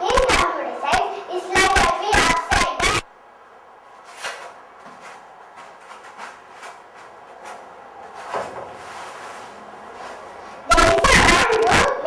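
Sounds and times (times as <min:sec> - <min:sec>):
child's voice over speakers: 0:00.0 - 0:03.1, 0:10.6 - 0:12.0.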